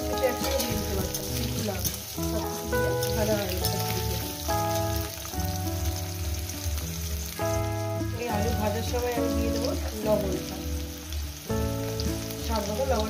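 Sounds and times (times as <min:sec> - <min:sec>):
background music: 0:00.0 - 0:13.0
potatoes sizzling in oil: 0:00.0 - 0:13.0.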